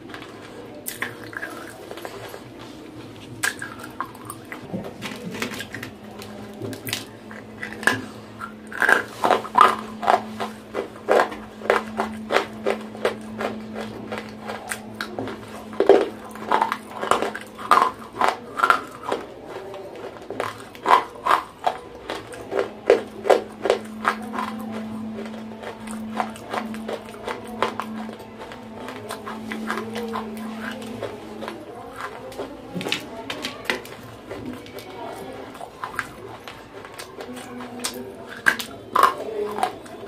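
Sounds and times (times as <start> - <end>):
crunching and chewing: 0.0 - 40.0
steady low hum: 0.0 - 40.0.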